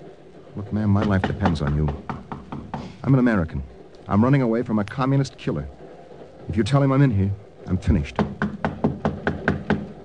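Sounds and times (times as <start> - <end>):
rapid knocking on a door: 0.6 - 10.0.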